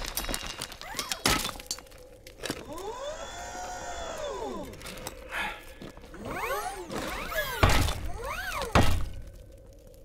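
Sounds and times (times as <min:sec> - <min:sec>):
mechanical servo whine: 0:02.6 - 0:05.0, 0:06.1 - 0:08.8.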